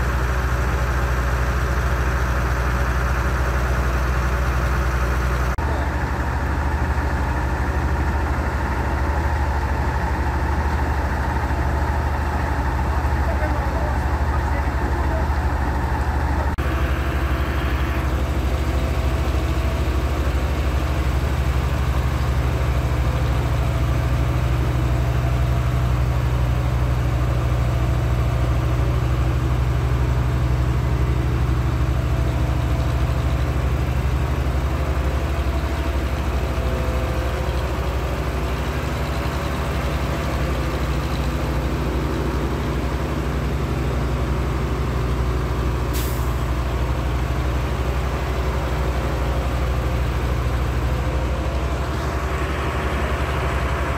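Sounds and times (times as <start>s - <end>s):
truck engine idling: 0.0s - 53.9s.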